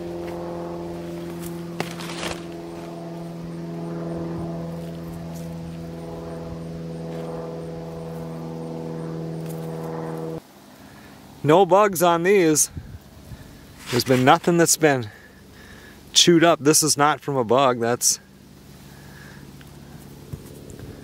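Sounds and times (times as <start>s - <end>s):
engine drone: 0.0s - 21.0s.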